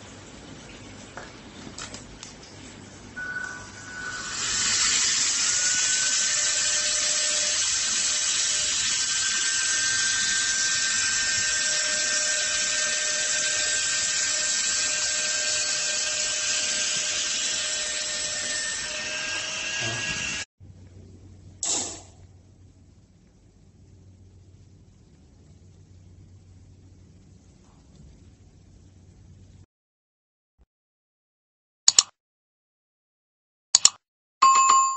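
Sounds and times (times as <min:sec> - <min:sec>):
handheld vacuum pump whining: 0:03.9 - 0:20.5.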